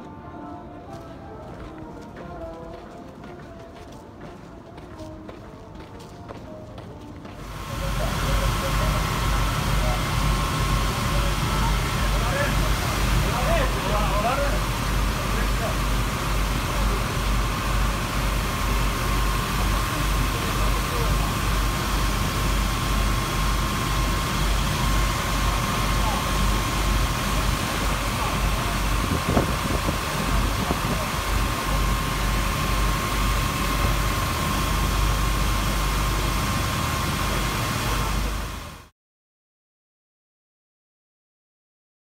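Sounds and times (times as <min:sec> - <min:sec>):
fire engine pumps running: 0:05.9 - 0:38.9
water jets hissing: 0:07.4 - 0:38.6
steady high whine: 0:07.4 - 0:38.9.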